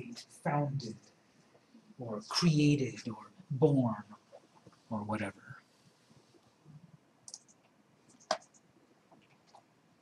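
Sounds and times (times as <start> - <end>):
computer mouse clicks: 7.2 - 9.7.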